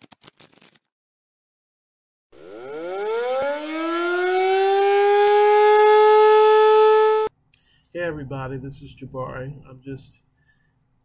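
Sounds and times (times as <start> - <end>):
siren-like tone winding up: 2.4 - 7.3.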